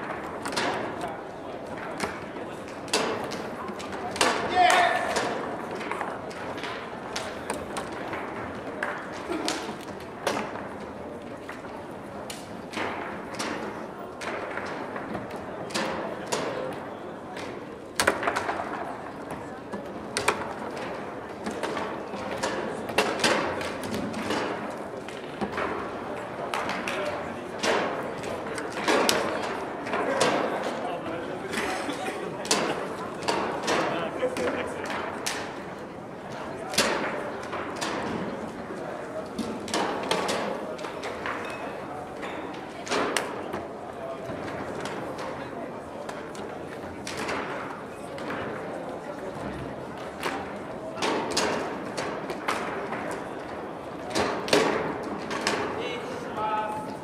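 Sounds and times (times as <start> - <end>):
foosball rods banging: 0.0 - 11.7, 12.6 - 16.8, 17.4 - 30.8, 32.4 - 35.6, 36.6 - 38.6, 50.1 - 55.8
foosball ball knocks and clacks: 0.0 - 31.7, 32.4 - 55.8
background chatter: 0.0 - 57.0.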